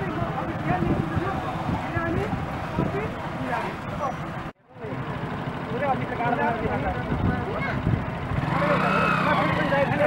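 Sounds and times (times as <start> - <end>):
motorcycle engines idling: 0.0 - 10.0
people talking at once: 5.7 - 10.0.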